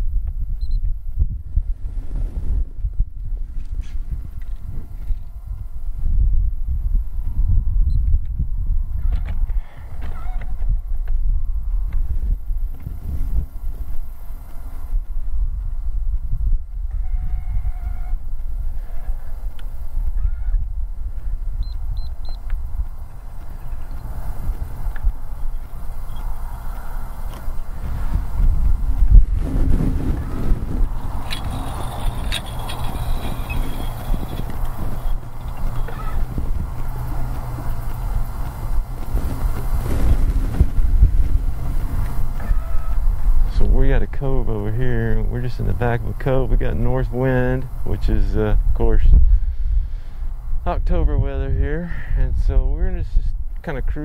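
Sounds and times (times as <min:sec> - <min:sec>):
wind buffeting microphone: 0:00.0 - 0:54.0
faint short tonal calls: 0:09.0 - 0:10.6, 0:16.9 - 0:19.5, 0:30.2 - 0:36.4, 0:42.4 - 0:43.2.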